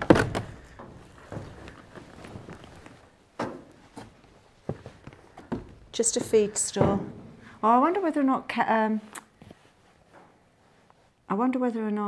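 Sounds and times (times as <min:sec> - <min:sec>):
footsteps on metal floor: 0:00.0 - 0:08.0.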